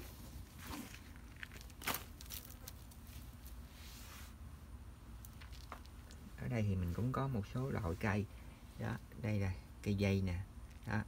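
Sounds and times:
potting mix rustling: 0.0s - 9.5s.

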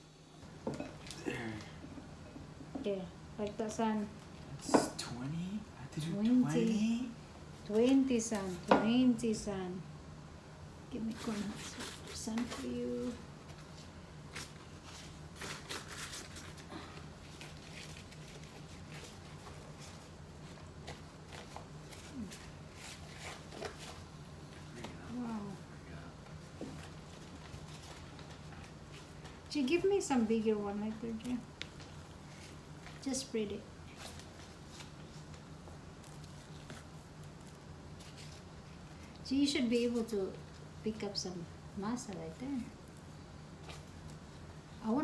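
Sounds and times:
faint low hum: 0.0s - 45.0s.

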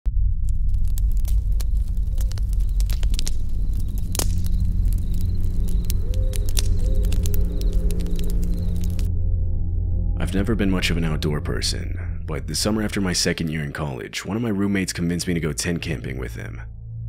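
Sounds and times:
steady low drone: 0.1s - 17.0s
campfire crackling and popping: 0.2s - 9.1s.

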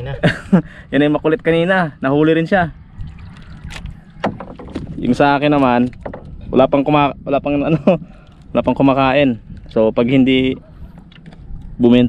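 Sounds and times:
water lapping around canoe: 2.9s - 6.5s.

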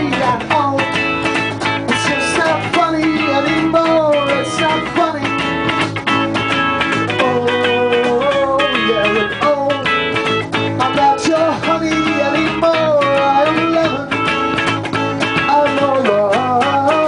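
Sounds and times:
rock band playing live: 0.0s - 17.0s.

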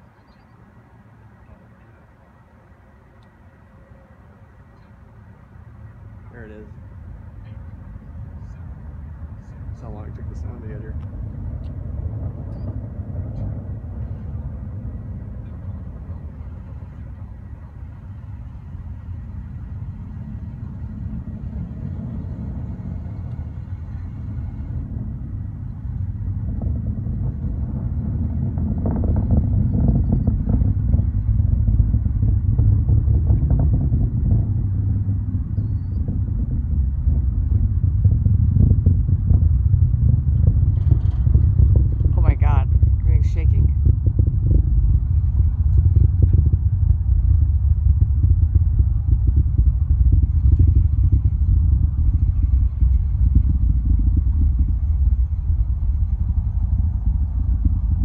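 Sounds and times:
distant rocket rumble: 4.2s - 58.0s.

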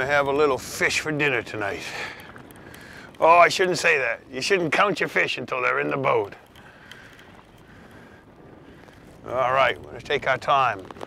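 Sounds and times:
wind noise on microphone: 0.0s - 11.0s.

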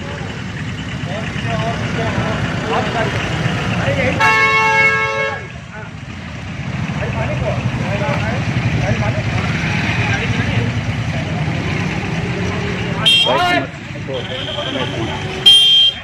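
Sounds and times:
traffic engine rumble: 0.0s - 16.0s.

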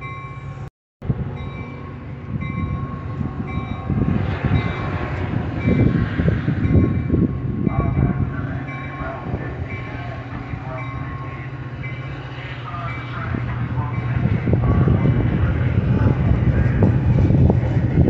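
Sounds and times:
train wheels rumbling on rail: 0.0s - 18.0s.

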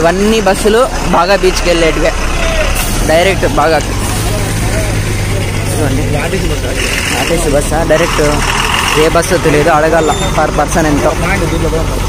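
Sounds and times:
bus engine idling: 0.0s - 12.0s
people's voices: 0.0s - 12.0s.

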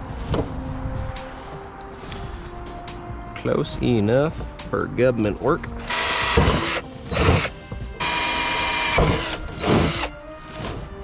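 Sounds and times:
cordless drill boring sheet metal: 5.9s - 10.1s.

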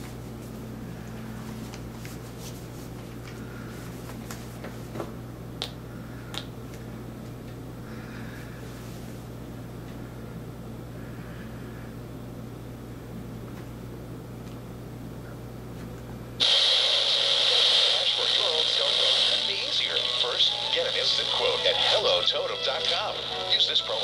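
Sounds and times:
low steady hum: 0.0s - 24.0s
thin voice from tv commercial: 16.9s - 24.0s.

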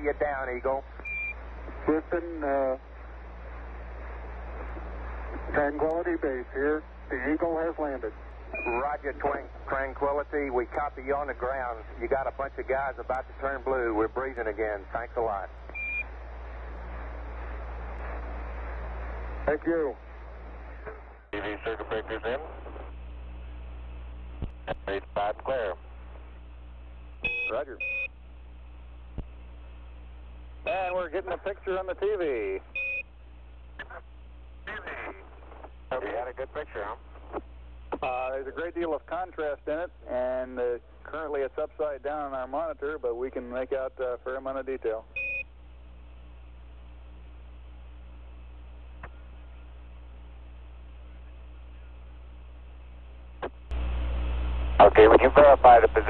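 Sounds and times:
radio hiss: 0.0s - 28.0s, 29.2s - 32.8s, 33.6s - 45.1s, 48.3s - 56.0s
low hum: 0.0s - 56.0s
radio click: 24.4s - 25.5s, 37.1s - 38.1s, 53.4s - 53.8s.

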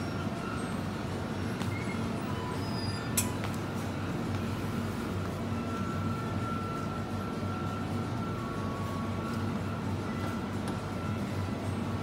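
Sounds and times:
refrigerated display cases humming: 0.0s - 12.0s.

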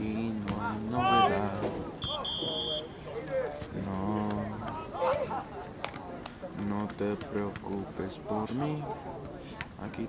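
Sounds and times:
voices: 0.0s - 10.0s
referee's whistle blast: 2.0s - 3.0s.

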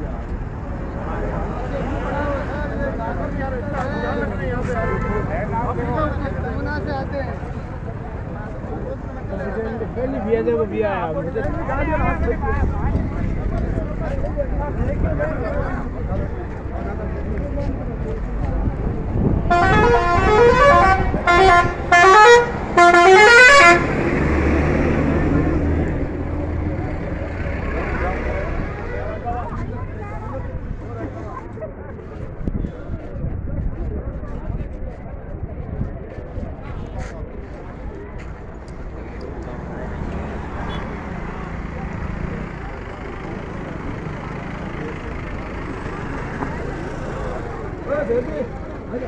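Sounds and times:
highway traffic: 0.0s - 49.0s
people's voices: 0.0s - 49.0s
bus musical horn: 4.7s - 5.4s, 19.5s - 24.0s
bus engine running low: 5.7s - 49.0s.

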